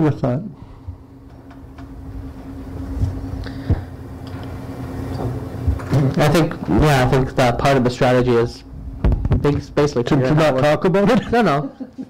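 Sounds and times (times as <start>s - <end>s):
steady low hum: 0.0s - 12.0s
low rumble: 8.5s - 10.0s.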